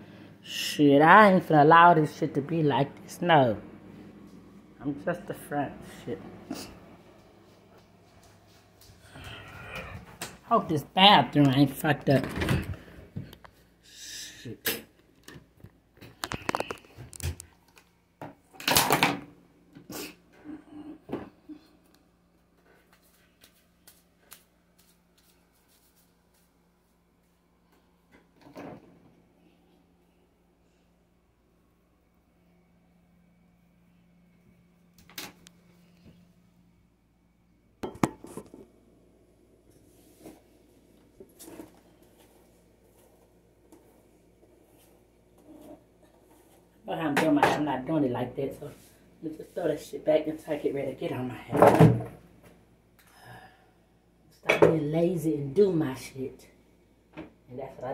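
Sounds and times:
objects clattering on countertop: 37.8 - 38.7.

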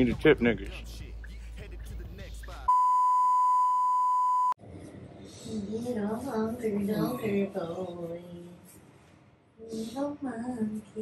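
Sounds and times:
censor bleep tone: 2.7 - 4.6.

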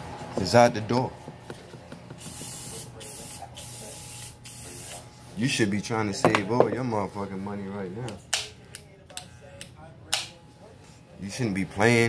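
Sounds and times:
aerosol spray can hissing: 2.2 - 5.0.

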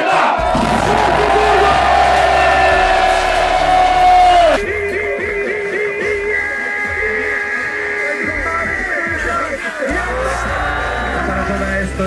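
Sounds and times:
crowd cheering and shouting: 0.0 - 12.0
loud hip-hop music: 0.0 - 12.0
deep bass: 0.4 - 7.4, 8.2 - 12.0.

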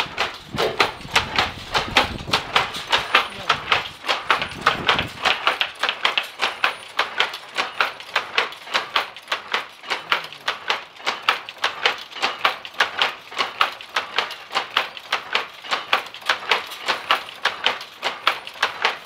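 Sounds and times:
loom clattering: 0.0 - 19.0.

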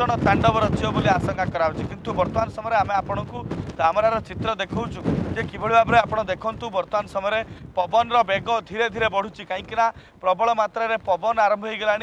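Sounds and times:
man talking: 0.0 - 12.0
wind buffeting microphone: 0.0 - 12.0.

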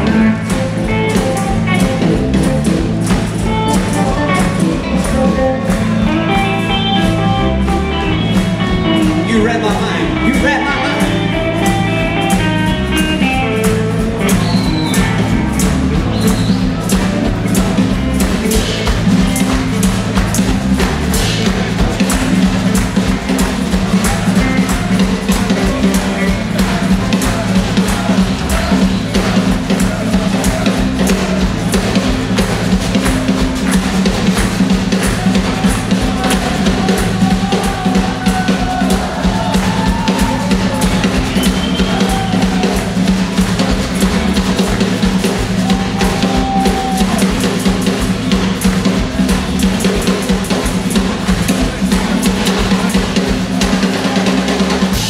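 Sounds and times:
electric guitar lead with bent notes: 0.0 - 53.4
blues band jamming: 0.0 - 55.0.

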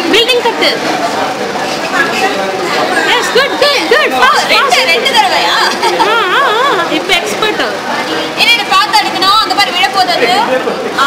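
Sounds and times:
high-pitched voices chattering: 0.0 - 11.0.

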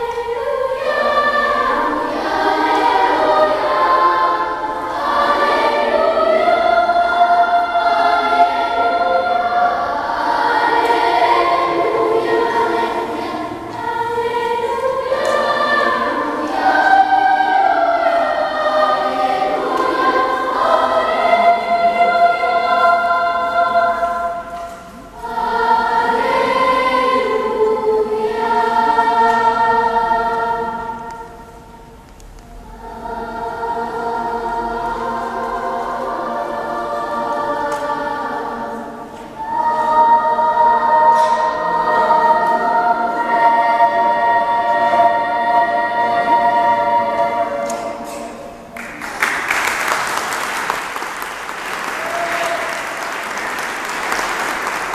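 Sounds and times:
children's choir singing: 0.0 - 54.9.

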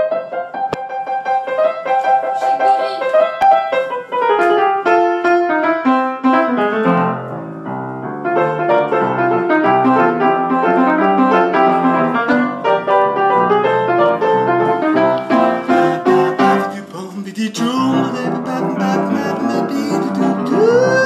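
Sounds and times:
rock piano playing: 0.0 - 21.0.

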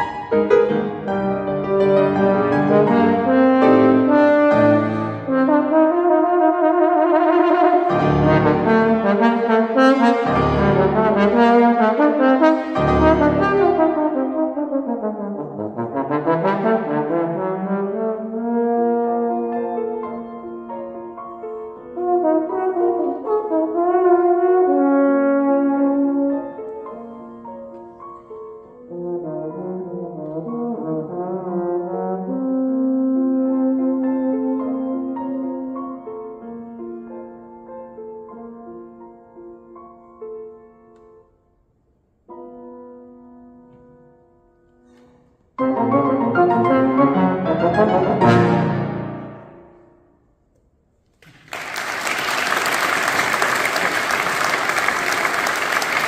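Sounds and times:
piano accompaniment: 0.0 - 50.3
bass trombone melody: 0.4 - 20.2, 21.8 - 26.5, 28.8 - 35.8, 45.6 - 49.8.

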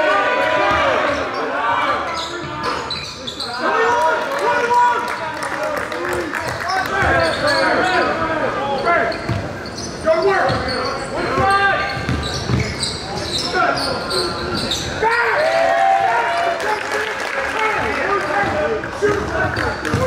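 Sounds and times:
sneakers squeaking: 0.6 - 3.8, 6.5 - 15.2, 18.4 - 20.0.

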